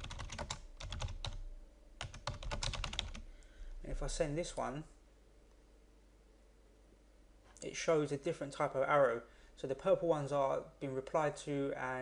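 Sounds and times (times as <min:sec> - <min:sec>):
computer keyboard typing: 0:00.0 - 0:01.4, 0:02.0 - 0:03.2.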